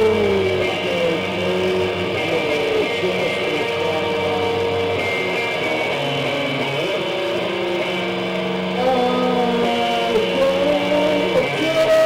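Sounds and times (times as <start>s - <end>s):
electric guitar ringing notes: 0.0s - 12.0s
live rock band: 0.0s - 12.0s.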